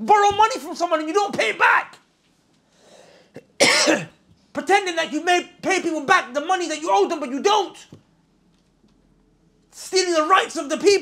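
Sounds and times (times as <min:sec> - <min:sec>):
faint breath: 0:02.6 - 0:03.4
man coughing: 0:03.3 - 0:04.2.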